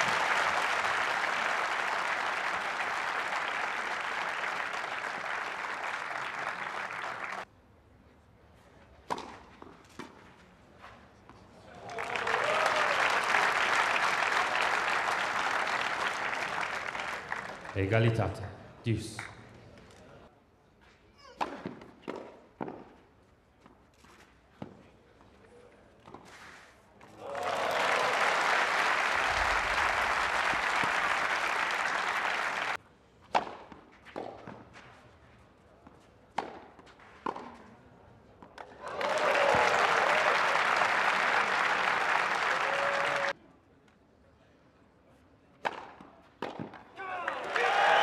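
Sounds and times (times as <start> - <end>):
crowd applause: 0.0 - 7.4, 11.8 - 17.8, 27.2 - 32.8, 38.8 - 43.4
tennis ball struck by racquets: 21.4 - 23.0, 33.2 - 34.7, 36.3 - 37.6, 45.6 - 46.9.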